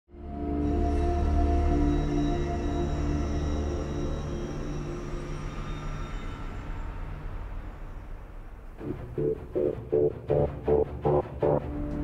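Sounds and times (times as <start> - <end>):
dark ambient music: 0.1 - 12.0.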